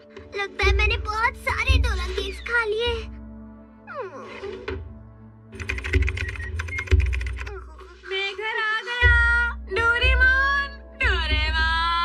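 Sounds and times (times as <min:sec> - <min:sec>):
rapid cartoon clicks: 0:05.6 - 0:07.8.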